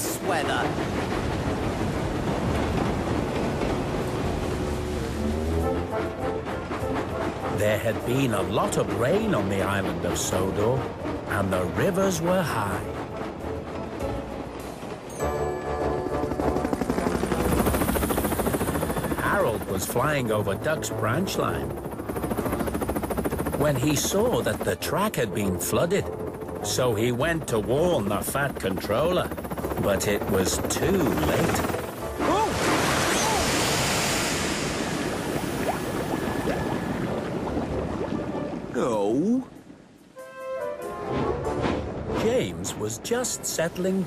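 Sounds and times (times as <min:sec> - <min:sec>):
helicopter rotor chopping: 0:00.0 - 0:15.0, 0:15.7 - 0:37.1
background music: 0:00.0 - 0:44.0
rushing and sloshing water: 0:00.0 - 0:44.0
heavy water splash: 0:32.0 - 0:39.9.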